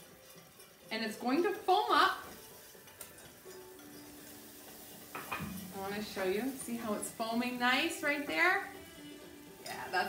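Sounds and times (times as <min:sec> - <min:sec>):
butter sizzling in a saucepan: 0:00.0 - 0:10.0.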